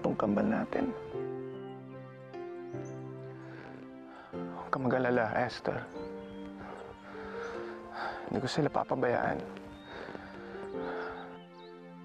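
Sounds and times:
sustained background chords: 0:00.0 - 0:12.0.

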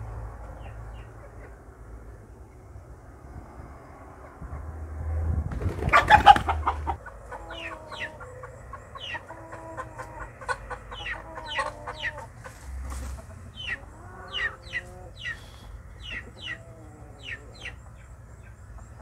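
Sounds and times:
chickens clucking: 0:00.4 - 0:02.7, 0:05.5 - 0:19.0
chicken wings flapping: 0:05.5 - 0:07.0.

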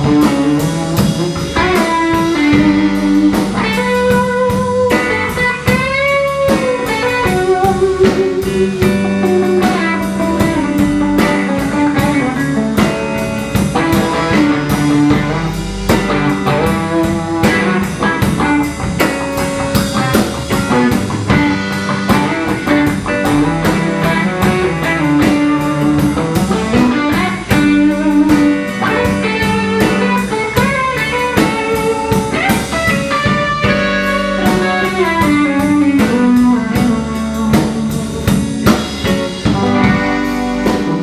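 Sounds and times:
bass guitar: 0:00.0 - 0:41.0
drum kit: 0:00.0 - 0:41.0
electric guitars: 0:00.0 - 0:41.0.

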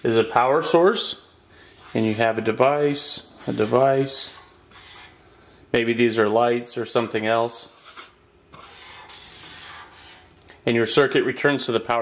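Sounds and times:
felt-tip marker scratching on board: 0:01.8 - 0:05.2, 0:07.8 - 0:10.2.

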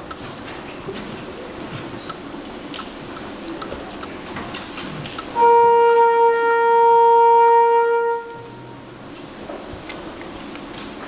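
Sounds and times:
wind instrument holding note: 0:05.4 - 0:08.8.

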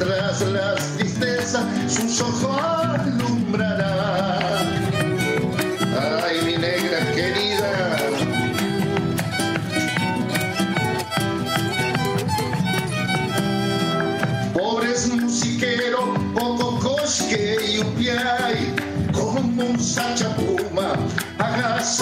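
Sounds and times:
strummed rhythm: 0:00.0 - 0:22.0
fiddle melody: 0:03.9 - 0:16.5.

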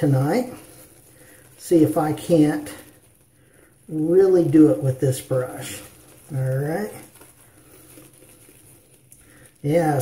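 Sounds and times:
shaving brush brushing soap: 0:00.0 - 0:10.0.

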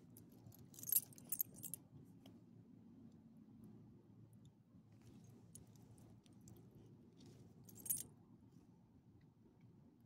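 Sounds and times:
dog collar tags jingling: 0:00.6 - 0:01.8, 0:07.7 - 0:08.0.

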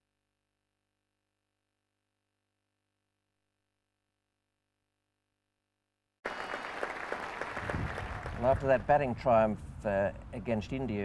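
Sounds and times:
applause: 0:06.2 - 0:08.8.

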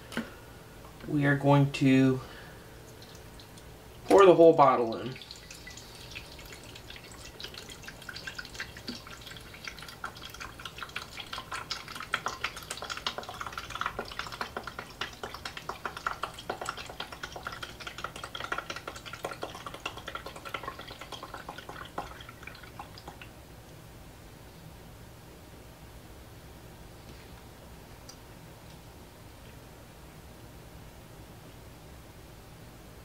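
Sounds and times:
ink glugging and dripping: 0:04.8 - 0:23.3.

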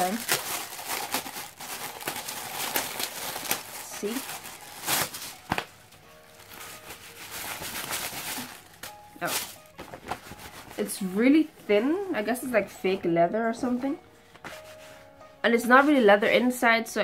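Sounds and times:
plastic packaging crinkling: 0:00.0 - 0:10.8.

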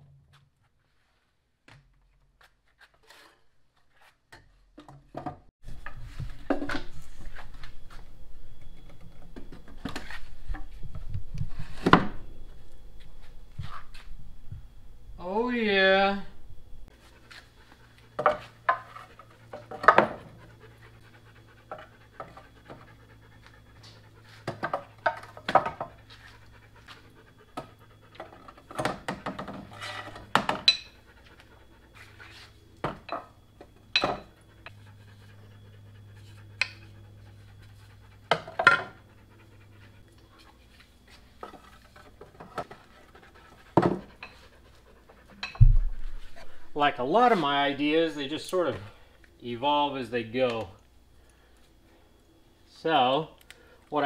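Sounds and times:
dog panting: 0:16.9 - 0:28.8, 0:30.8 - 0:32.8, 0:34.2 - 0:46.7.

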